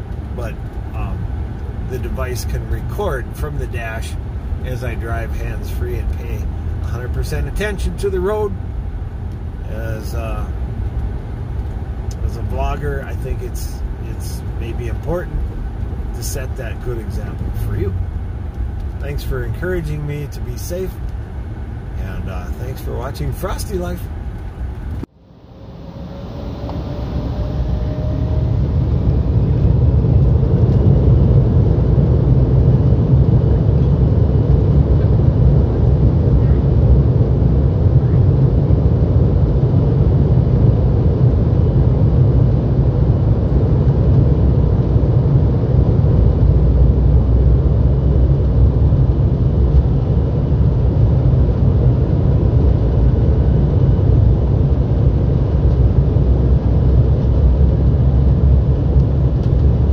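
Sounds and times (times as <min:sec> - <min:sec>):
jet engines rumbling: 0:00.0 - 0:59.9
rising engine whine: 0:00.0 - 0:59.9.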